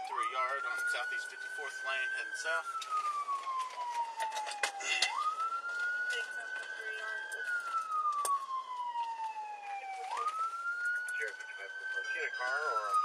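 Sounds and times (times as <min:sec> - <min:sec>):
police siren wailing: 0:00.0 - 0:13.0.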